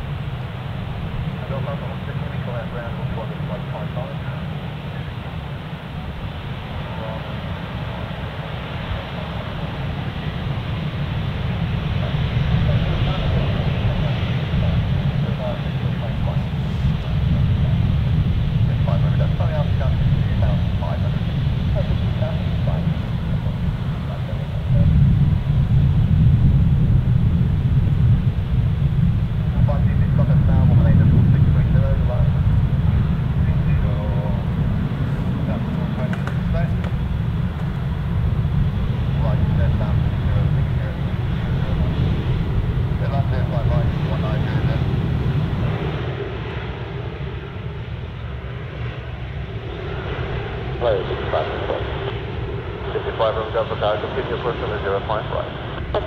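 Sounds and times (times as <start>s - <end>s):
jet engines taxiing rumble: 0.0s - 56.0s.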